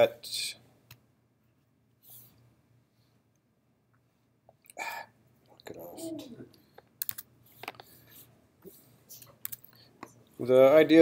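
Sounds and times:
man humming: 5.7s - 6.5s.

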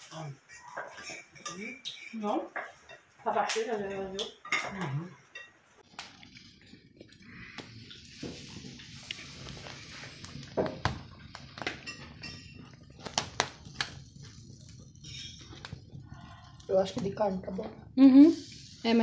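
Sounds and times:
fire popping and crackling: 0.0s - 19.0s
meat sizzling on a grill: 0.0s - 19.0s.

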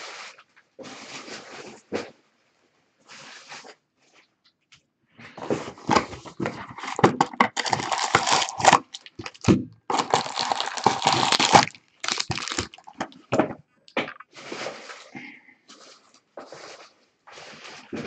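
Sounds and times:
cardboard and foil crinkling: 5.4s - 13.2s.

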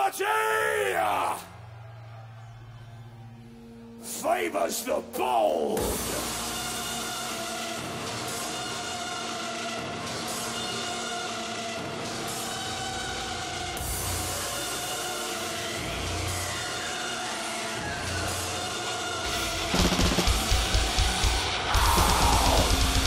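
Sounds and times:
metal band with rapid drums: 19.2s - 23.0s.

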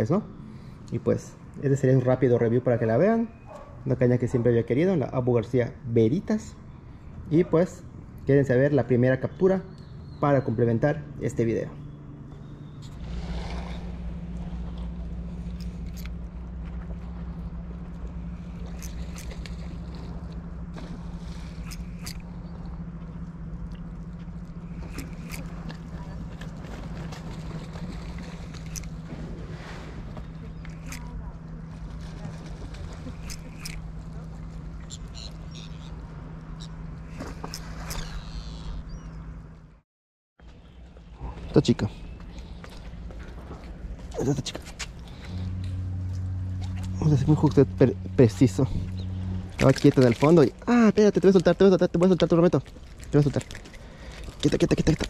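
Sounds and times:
motor humming: 12.2s - 39.8s, 42.0s - 55.0s.

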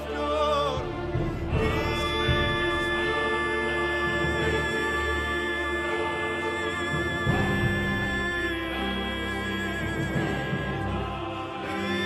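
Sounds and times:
orchestra strings sustained chord: 0.0s - 12.0s.

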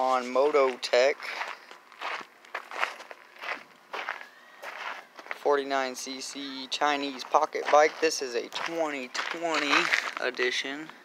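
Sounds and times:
footsteps on gravel: 0.0s - 11.0s.

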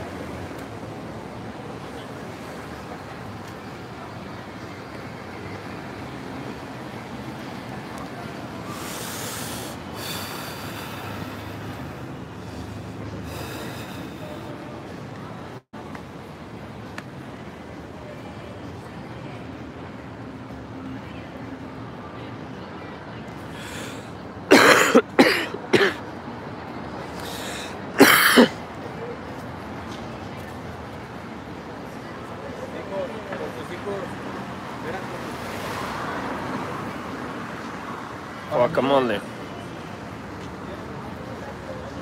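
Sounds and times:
street traffic: 0.0s - 42.0s
person coughing: 24.5s - 26.0s, 28.0s - 28.6s.

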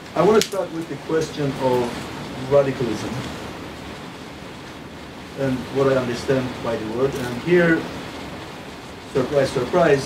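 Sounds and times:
steady background hiss: 0.0s - 10.0s
man's voice: 0.1s - 3.3s, 5.4s - 7.9s, 9.2s - 10.0s.

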